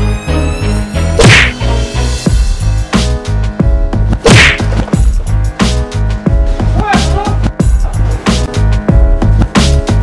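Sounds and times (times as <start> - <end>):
loud whooshing whack: 1.2 - 1.6, 4.2 - 4.7
music with steady bass beat: 1.2 - 10.0.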